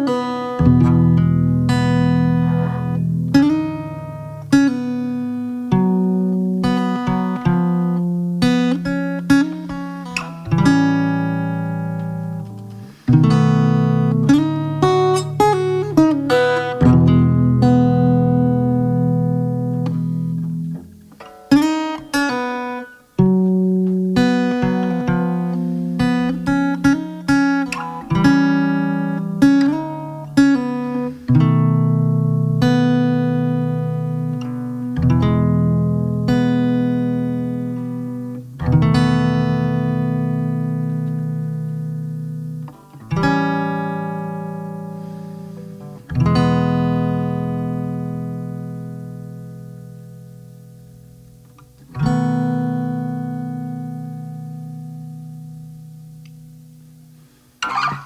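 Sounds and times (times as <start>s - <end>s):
acoustic guitar: 0.0s - 58.0s.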